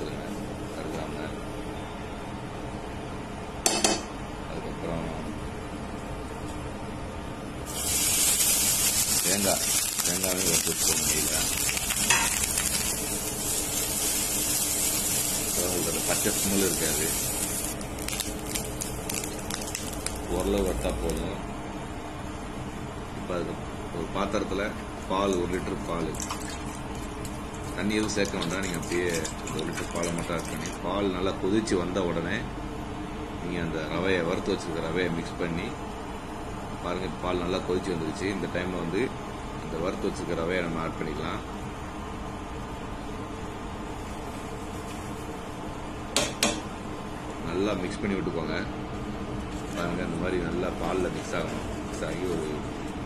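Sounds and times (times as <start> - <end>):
milk pouring and splashing into pot: 26.1 - 30.8.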